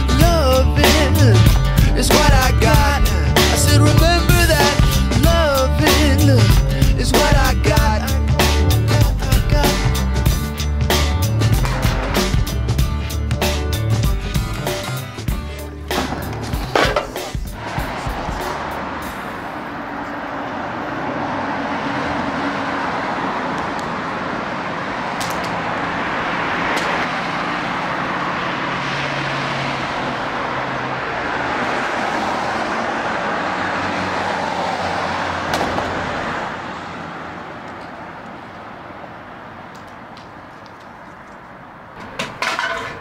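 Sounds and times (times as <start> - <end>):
traffic passing: 0.0 - 43.0.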